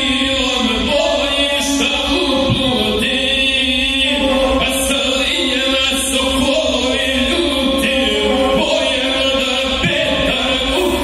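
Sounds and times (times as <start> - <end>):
man chanting epic song: 5.3 - 11.0.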